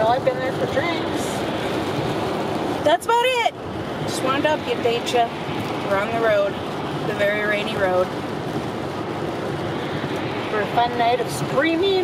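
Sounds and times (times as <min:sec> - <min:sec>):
tyres rushing on wet road: 0:00.0 - 0:12.0.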